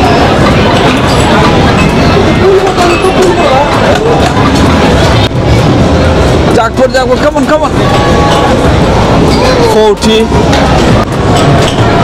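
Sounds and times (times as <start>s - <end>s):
crowd chatter: 0.0s - 12.0s
game machines rumbling: 0.0s - 12.0s.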